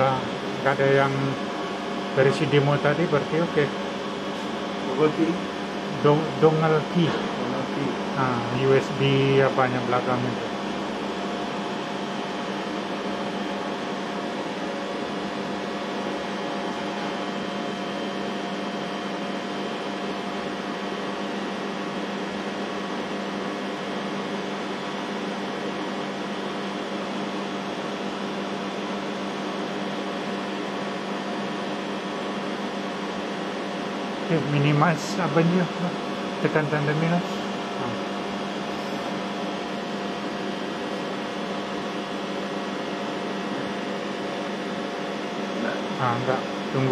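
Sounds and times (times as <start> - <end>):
machinery and ventilation hum: 0.0 - 46.9.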